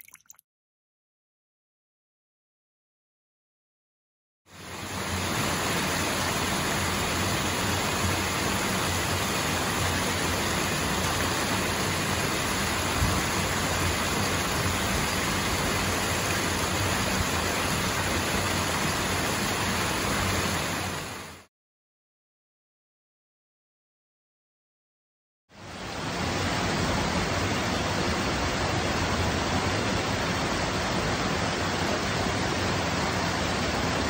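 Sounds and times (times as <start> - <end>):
waterfall rushing: 4.5 - 21.5, 25.6 - 34.0.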